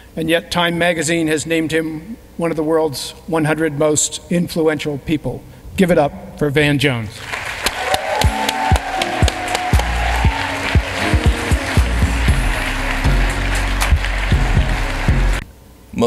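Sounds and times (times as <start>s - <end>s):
audience applause: 7.2s - 15.4s
music over speakers: 7.8s - 15.4s.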